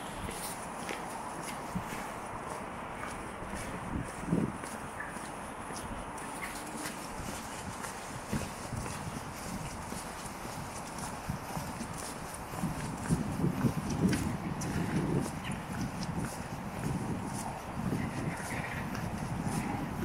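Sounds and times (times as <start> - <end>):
footsteps on paving: 0.0 - 20.0.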